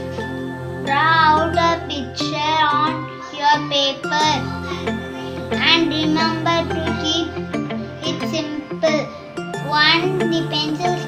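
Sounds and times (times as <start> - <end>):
instrumental backing music: 0.0 - 11.0
girl singing: 0.9 - 11.0.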